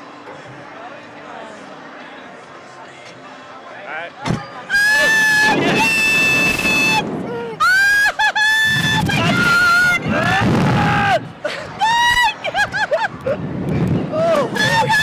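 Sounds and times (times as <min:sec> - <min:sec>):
wind on microphone: 0:05.3 - 0:07.6, 0:13.1 - 0:15.0.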